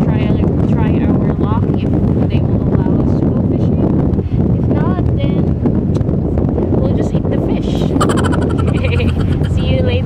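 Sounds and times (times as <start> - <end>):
wind buffeting microphone: 0.0 - 10.0
woman talking: 6.8 - 8.0, 8.6 - 10.0.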